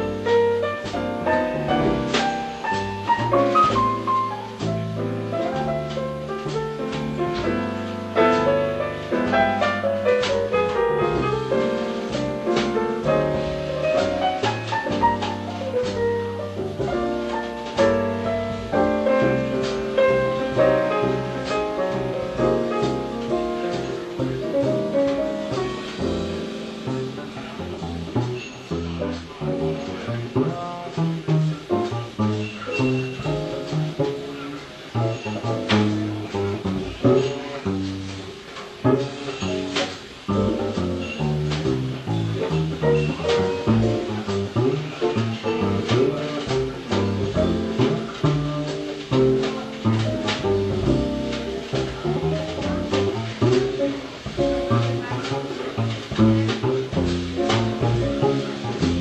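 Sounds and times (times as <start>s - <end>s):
jazz combo playing: 0.0s - 59.0s
piano chords: 0.0s - 59.0s
plucked double bass: 0.0s - 59.0s.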